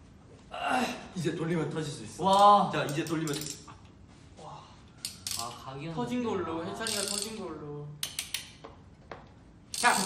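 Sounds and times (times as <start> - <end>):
plastic toy crank clicking: 5.0 - 5.6, 6.8 - 7.4, 9.7 - 10.0.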